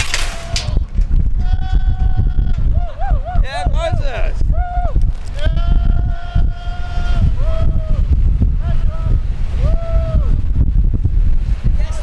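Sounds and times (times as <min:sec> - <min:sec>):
wind rumble on microphone: 0:00.0 - 0:12.0
person yelling: 0:05.4 - 0:08.0.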